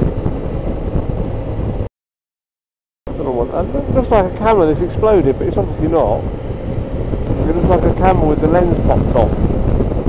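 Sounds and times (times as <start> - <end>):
wind rushing over microphone: 0.0 - 1.9, 3.1 - 10.0.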